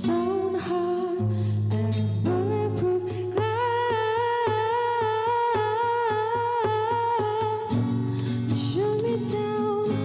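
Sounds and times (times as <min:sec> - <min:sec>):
classical guitar plucked: 0:00.0 - 0:10.0.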